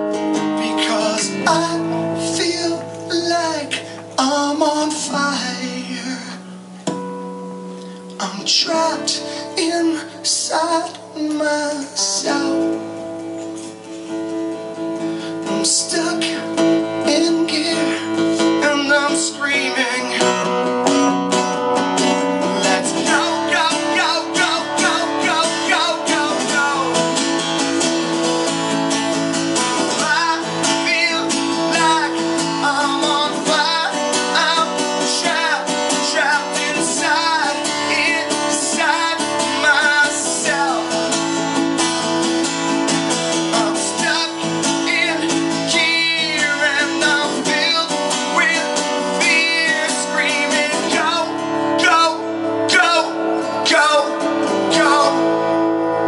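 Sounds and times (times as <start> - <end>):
man singing: 0.0 - 6.8, 8.2 - 13.0, 15.2 - 20.7, 22.3 - 27.4, 29.6 - 41.4, 43.3 - 56.0
acoustic guitar strumming: 0.0 - 56.0.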